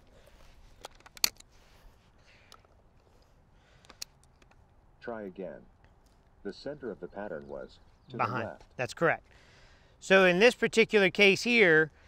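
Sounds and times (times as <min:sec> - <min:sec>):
shotgun action metallic clicks: 0:00.8 - 0:01.5, 0:03.8 - 0:04.8.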